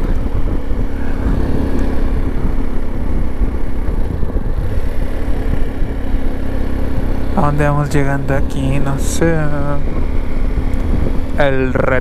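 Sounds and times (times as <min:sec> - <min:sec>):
motorcycle engine hum: 0:00.0 - 0:12.0
wind rumble on microphone: 0:00.0 - 0:12.0.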